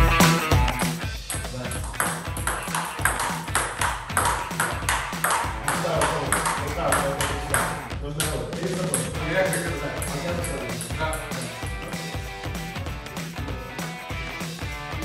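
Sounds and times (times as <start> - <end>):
background music: 0.0 - 15.0
table tennis ball clicks: 1.3 - 11.5.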